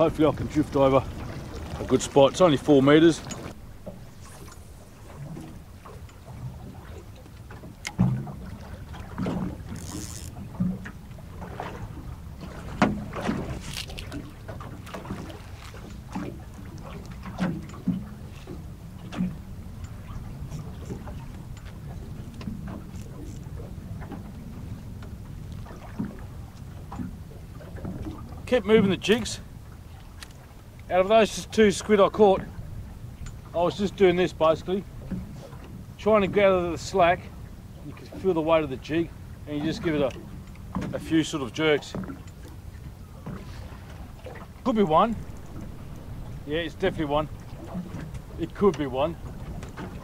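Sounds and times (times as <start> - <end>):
wind rumbling on microphone: 0.0 - 30.9, 41.9 - 50.0
water lapping against boat hull: 0.0 - 50.0.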